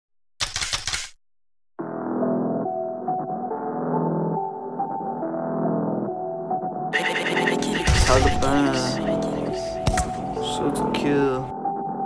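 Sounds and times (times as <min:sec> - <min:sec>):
keyboard music: 0:01.8 - 0:12.0.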